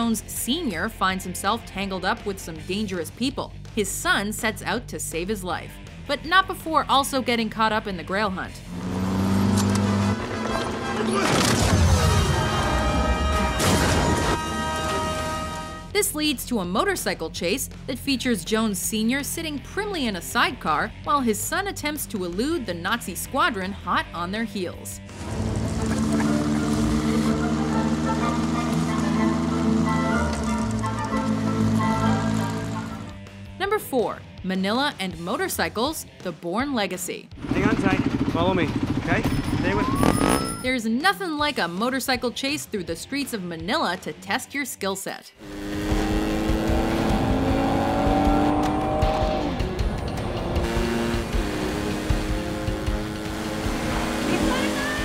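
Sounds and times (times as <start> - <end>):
orchestral music: 8.7 - 16.0, 25.1 - 33.2
motorcycle engine running: 25.1 - 33.3, 37.4 - 40.6, 45.4 - 55.0
tyre squeal: 39.3 - 40.7.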